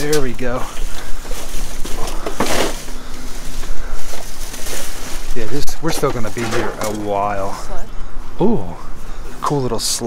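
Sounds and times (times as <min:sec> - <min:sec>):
plastic bag rustling and crinkling: 0:00.0 - 0:07.9.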